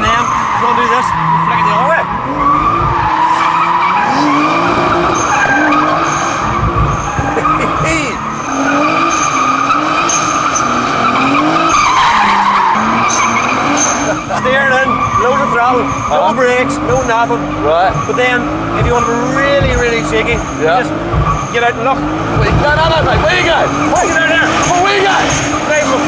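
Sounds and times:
car engine revving: 0.0s - 26.0s
tyres squealing: 0.0s - 26.0s.

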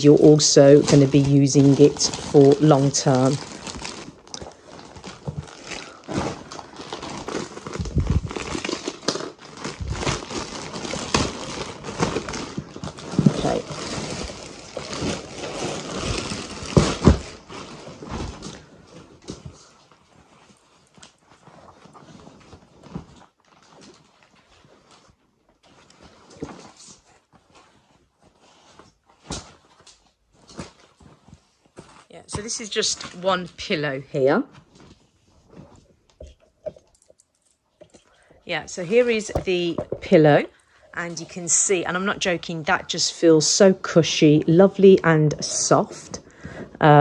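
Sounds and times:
plastic packaging crinkling: 0.0s - 47.0s.

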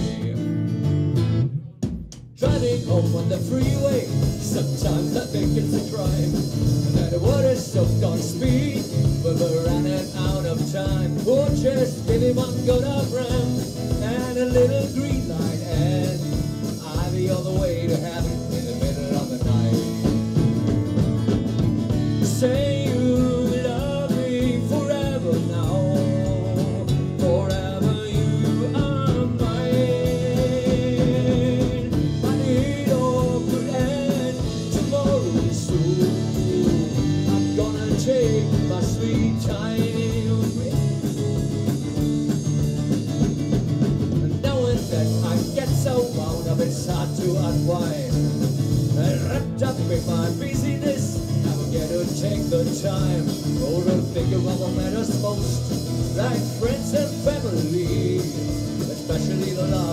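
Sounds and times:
acoustic guitar: 0.0s - 59.9s
bass guitar: 0.0s - 59.9s
drum kit: 0.0s - 59.9s.

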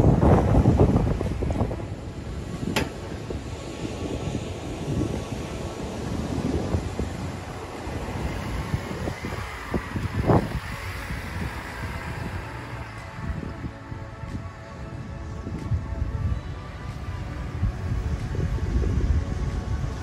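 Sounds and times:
vehicle engine labouring: 0.0s - 20.0s
wind buffeting microphone: 0.0s - 20.0s.

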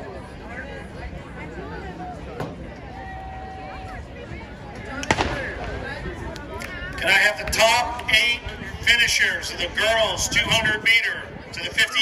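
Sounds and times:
spectators chattering: 0.0s - 12.0s
starter's pistol shot: 5.0s - 5.8s.

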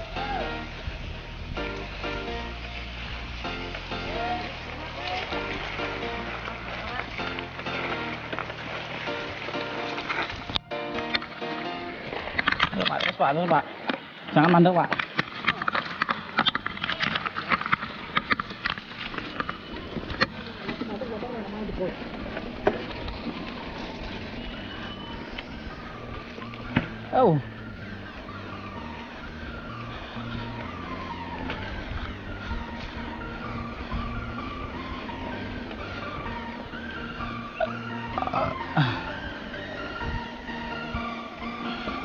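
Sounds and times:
background music: 0.0s - 13.7s, 22.9s - 42.0s
mountain bike rattling over dirt trail: 0.0s - 42.0s
falling pitch sweep: 23.2s - 42.0s.

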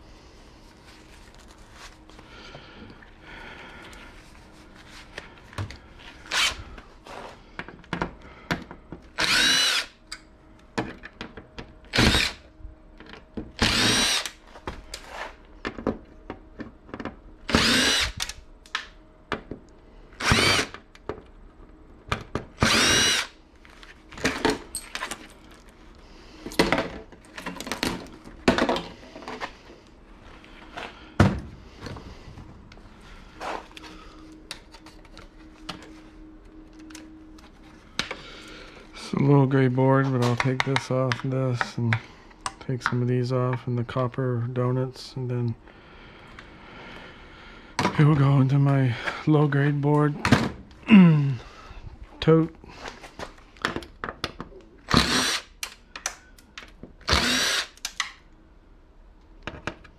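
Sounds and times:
cordless impact driver: 6.3s - 6.6s, 9.2s - 10.0s, 11.9s - 12.4s, 13.6s - 14.4s, 17.5s - 18.4s, 20.2s - 20.8s, 22.6s - 23.4s, 54.9s - 55.8s, 57.0s - 58.2s.

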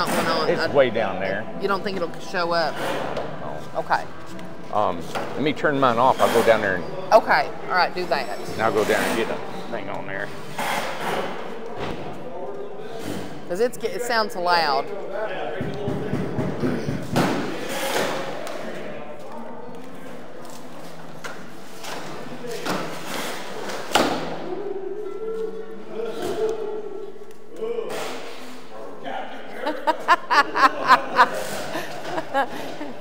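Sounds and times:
construction thumps and knocks: 15.6s - 17.5s
person laughing: 29.7s - 33.0s.

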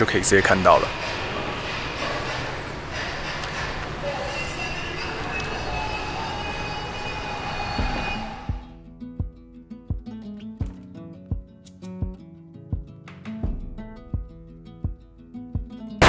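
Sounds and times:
steady rushing noise: 0.0s - 4.1s
plucked acoustic guitar music: 8.8s - 16.0s.

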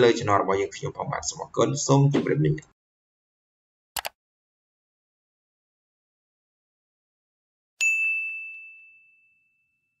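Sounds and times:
bell ding: 7.8s - 10.0s.

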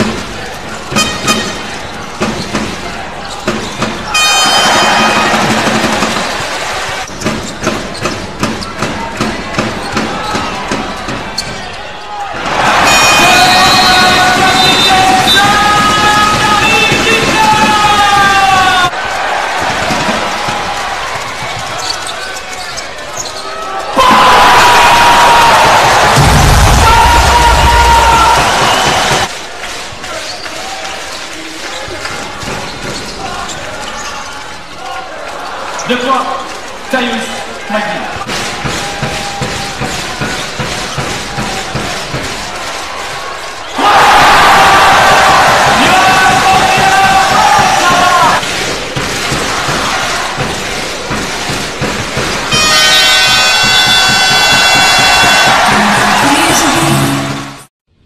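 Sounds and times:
crowd cheering: 0.0s - 57.7s.

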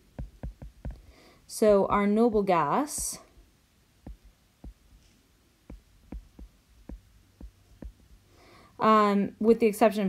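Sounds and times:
stylus tapping on glass screen: 0.0s - 1.1s, 1.9s - 3.3s, 4.0s - 5.0s, 5.7s - 8.1s.

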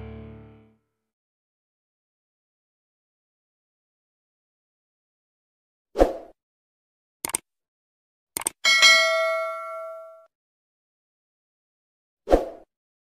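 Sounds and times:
mouse clicks: 7.2s - 7.4s, 8.4s - 8.6s
bell ding: 8.6s - 10.3s.

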